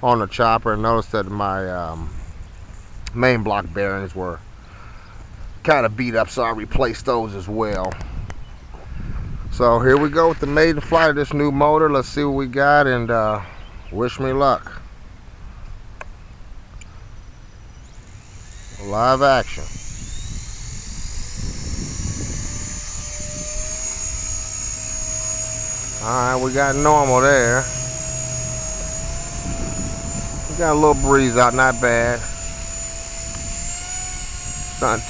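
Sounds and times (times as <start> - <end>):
electric motor whine: 1.0 - 5.6, 16.3 - 35.0
wind rumble on microphone: 8.0 - 11.4, 19.3 - 25.2, 25.9 - 35.0.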